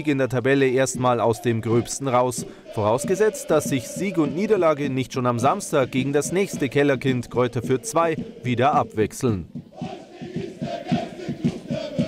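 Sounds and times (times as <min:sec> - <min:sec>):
crowd chanting over a fast beat: 0:00.7 - 0:12.0.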